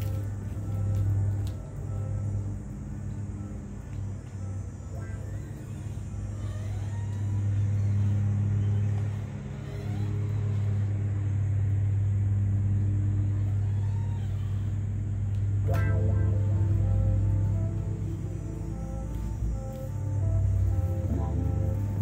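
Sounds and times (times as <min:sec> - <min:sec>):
vehicle engine rumbling: 0:00.0 - 0:22.0.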